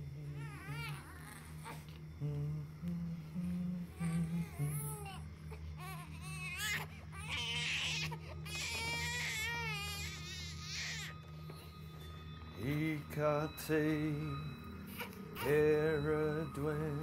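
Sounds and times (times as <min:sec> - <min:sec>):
low steady drone: 0:00.0 - 0:17.0
infant crying: 0:00.4 - 0:01.9, 0:03.9 - 0:11.2, 0:14.8 - 0:15.7.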